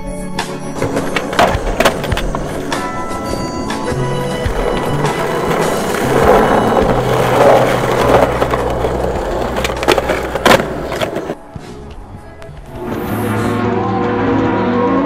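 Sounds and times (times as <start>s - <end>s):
music: 0.0s - 15.0s
skateboard wheels rolling on concrete: 0.4s - 13.2s
skateboard clacks: 0.8s - 11.4s.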